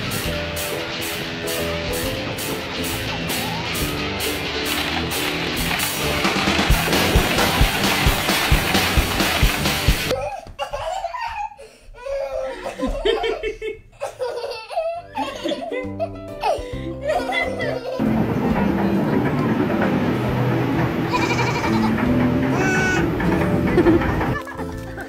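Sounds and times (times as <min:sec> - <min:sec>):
rock music with guitar: 0:00.0 - 0:10.1, 0:18.0 - 0:25.0
people laughing: 0:12.3 - 0:19.8, 0:20.6 - 0:22.3, 0:23.0 - 0:25.0.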